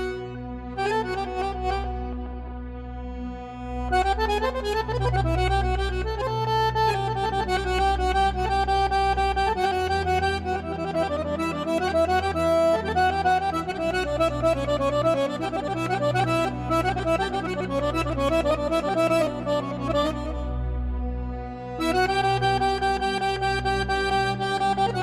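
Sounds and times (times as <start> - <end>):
accordion melody: 0.0 - 25.0
steady low bass: 0.0 - 25.0.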